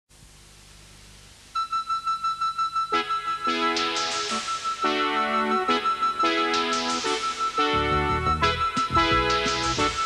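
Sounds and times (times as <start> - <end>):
faint hiss and hum: 0.1 - 10.0.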